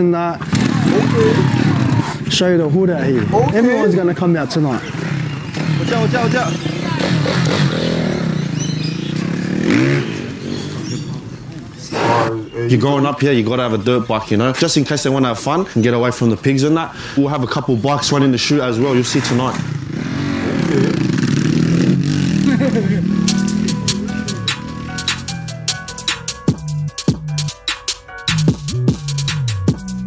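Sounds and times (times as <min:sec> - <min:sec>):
voices: 0:00.0 - 0:24.5
dirt bike engine revving: 0:00.4 - 0:11.2, 0:18.5 - 0:26.3
music with a beat: 0:23.2 - 0:30.0.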